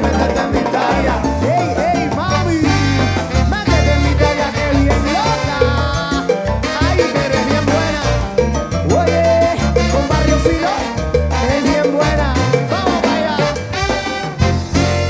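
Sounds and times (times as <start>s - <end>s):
salsa band playing: 0.0s - 15.0s.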